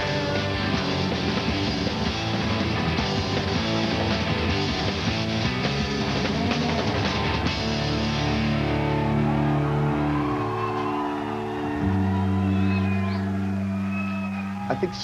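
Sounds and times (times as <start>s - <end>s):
held guitar and bass notes: 0.0s - 14.9s
drums: 0.0s - 15.0s
rock music: 0.0s - 15.0s.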